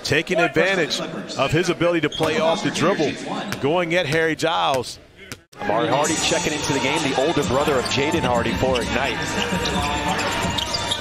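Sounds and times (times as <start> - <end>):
arena music: 5.6 - 11.0.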